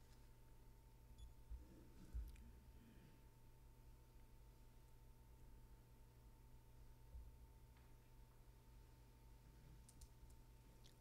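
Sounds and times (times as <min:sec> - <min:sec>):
faint steady tone: 0:00.0 - 0:11.0
soft clicks: 0:09.8 - 0:11.0.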